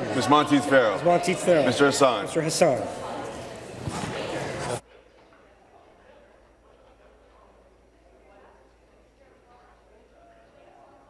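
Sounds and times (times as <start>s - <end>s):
large room noise: 0.0s - 11.0s.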